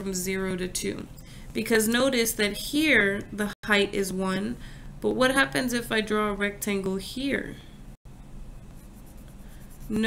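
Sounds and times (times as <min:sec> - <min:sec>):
pen scratching on paper: 0:08.7 - 0:10.0.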